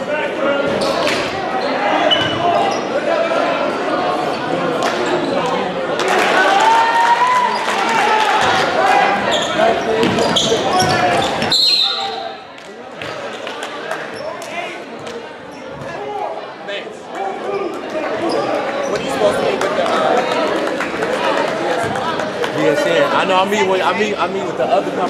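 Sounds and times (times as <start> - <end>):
players and spectators voices: 0.0 - 25.0
sneakers squeaking: 0.6 - 2.9, 9.2 - 12.4
referee whistle: 11.4 - 12.4.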